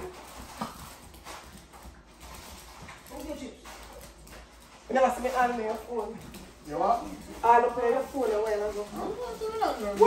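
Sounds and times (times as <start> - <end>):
dog claws clicking on wood floor: 0.0 - 10.0.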